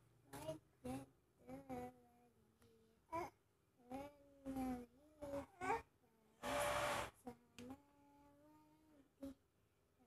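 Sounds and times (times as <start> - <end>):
toddler babbling: 3.1 - 6.0.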